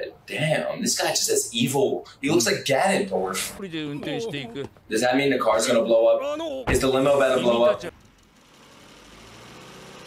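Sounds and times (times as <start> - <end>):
car engine running: 6.7 - 10.0.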